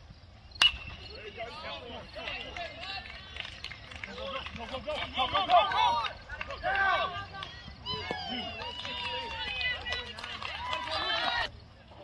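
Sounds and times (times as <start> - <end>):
crowd shouting and yelling: 4.2 - 11.6.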